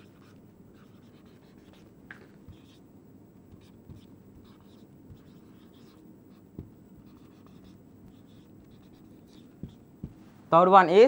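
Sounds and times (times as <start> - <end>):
marker pen writing on whiteboard: 0.0 - 2.9, 3.5 - 10.3.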